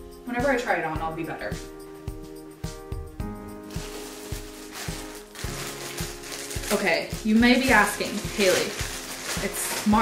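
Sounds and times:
music with low thumps: 0:00.0 - 0:06.6.

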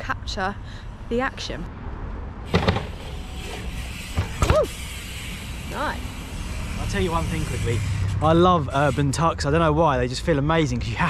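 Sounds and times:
traffic hum: 0:00.0 - 0:11.0
sharp knocks: 0:02.5 - 0:03.1
bike rolling over paving: 0:02.5 - 0:05.6.

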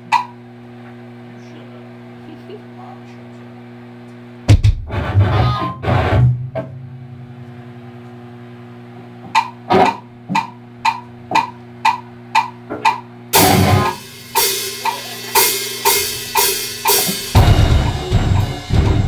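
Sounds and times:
amplifier hum: 0:00.0 - 0:19.0
rock band with drums: 0:04.5 - 0:06.8, 0:09.2 - 0:19.0
electric guitar and bass chord: 0:04.5 - 0:07.9, 0:13.3 - 0:19.0
count-in clicks: 0:09.3 - 0:18.5.

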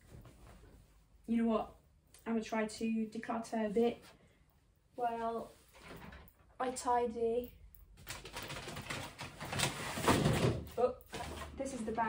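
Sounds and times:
clothes rustling and crackling: 0:00.0 - 0:06.9.

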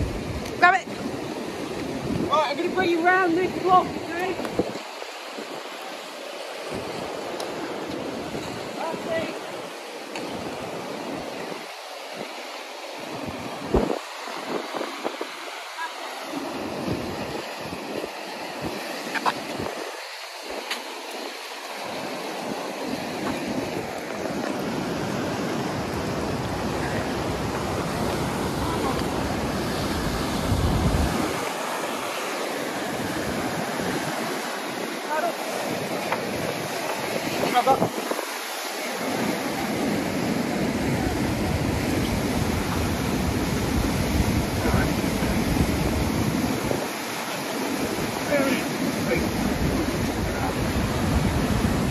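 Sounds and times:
whitewater rapids rushing: 0:00.0 - 0:51.9
wind buffeting microphone: 0:00.0 - 0:51.9.

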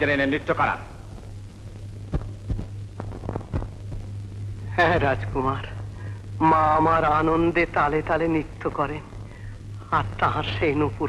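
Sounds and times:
steady low hum: 0:00.0 - 0:11.0
soft low thumps: 0:01.1 - 0:05.3.

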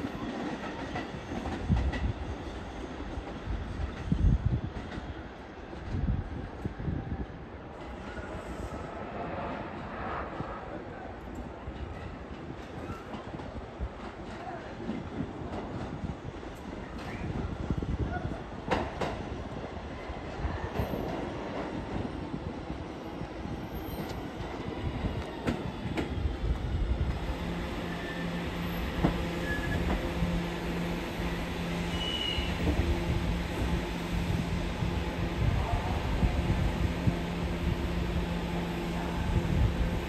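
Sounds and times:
train wheels rumbling over rail joints: 0:23.6 - 0:40.0.

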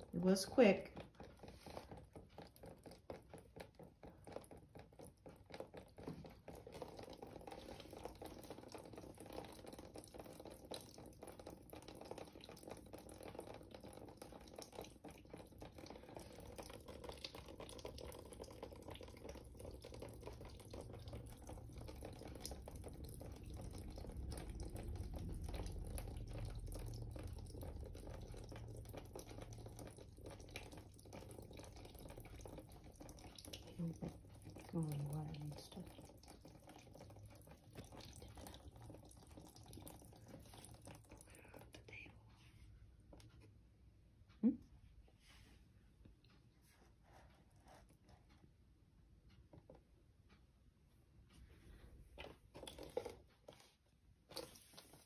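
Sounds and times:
water trickling and dripping: 0:00.0 - 0:43.6, 0:51.3 - 0:55.0.

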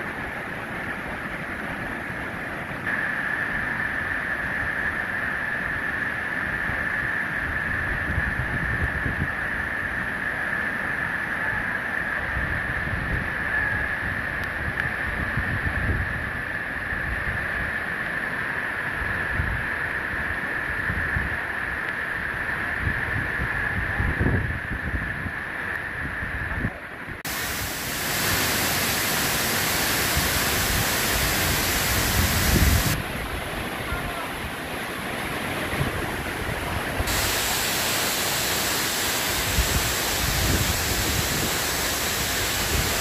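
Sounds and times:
steady high-pitched hum: 0:00.0 - 0:15.3, 0:27.3 - 0:34.2, 0:36.3 - 0:43.0
wind buffeting microphone: 0:27.3 - 0:33.7, 0:35.6 - 0:43.0
waterfall rushing: 0:27.3 - 0:43.0.

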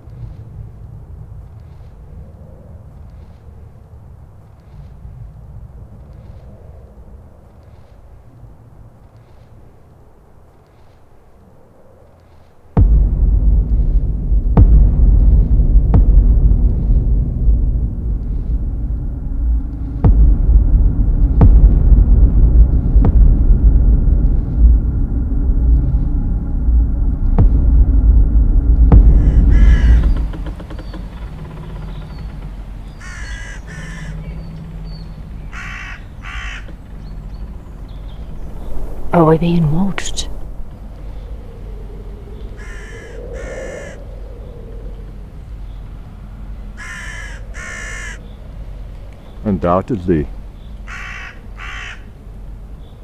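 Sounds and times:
loud deep rumble: 0:12.8 - 0:53.0
sharp knocks: 0:28.8 - 0:34.0
crows cawing: 0:29.0 - 0:37.5, 0:42.3 - 0:45.2, 0:46.6 - 0:49.2, 0:50.7 - 0:52.5.

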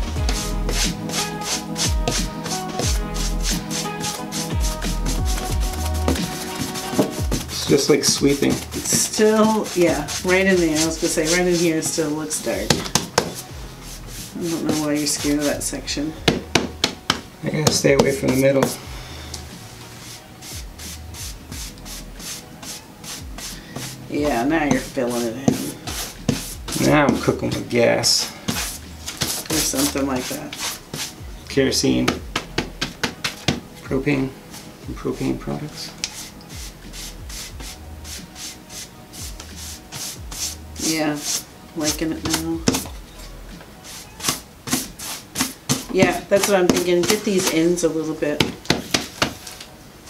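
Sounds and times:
paintbrush scratching on wood: 0:00.0 - 0:15.8, 0:18.0 - 0:18.8, 0:19.7 - 0:31.2, 0:36.0 - 0:42.9, 0:43.8 - 0:49.4.

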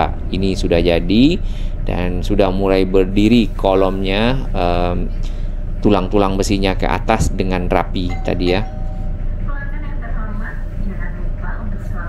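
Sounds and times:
low rumble of moving vehicle: 0:00.0 - 0:12.0
public-address announcement voice: 0:05.8 - 0:12.0.

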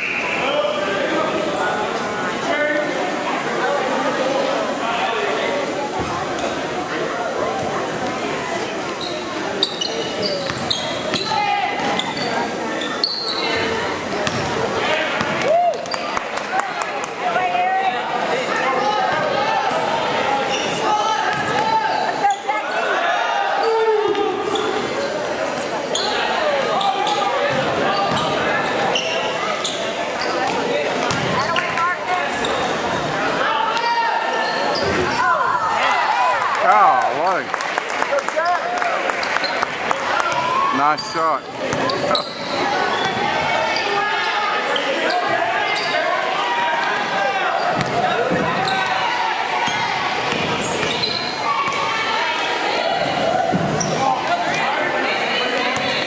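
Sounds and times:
echoing murmur of voices: 0:00.0 - 0:56.0.

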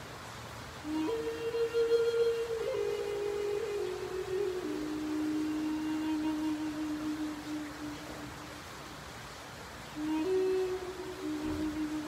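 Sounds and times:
flute playing: 0:00.8 - 0:08.7, 0:10.0 - 0:12.0.

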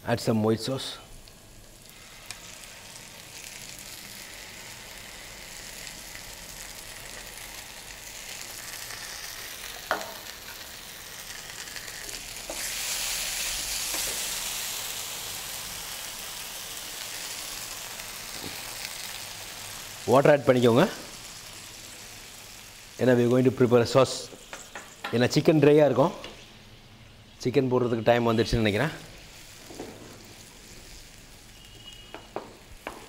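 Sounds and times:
food sizzling in a frying pan: 0:01.1 - 0:26.6, 0:28.7 - 0:33.0.

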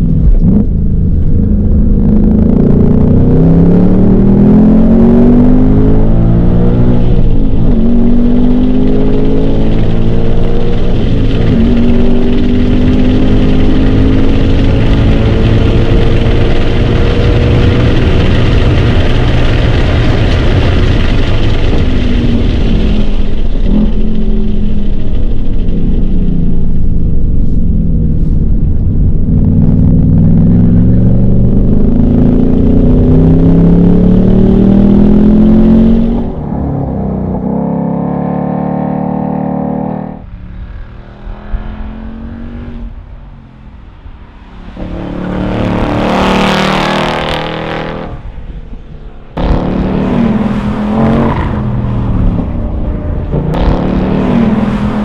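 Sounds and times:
car engine at full throttle: 0:00.0 - 0:55.0
car passing by: 0:38.4 - 0:55.0.

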